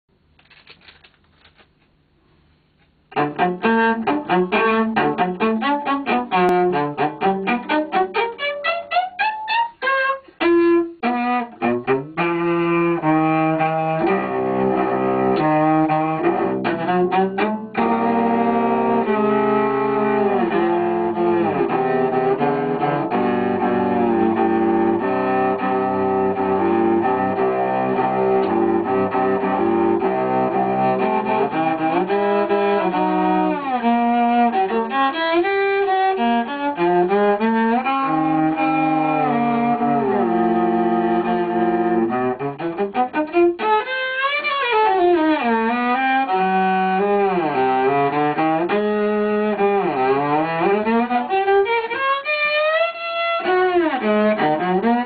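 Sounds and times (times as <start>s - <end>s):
bowed cello: 3.1s - 55.0s.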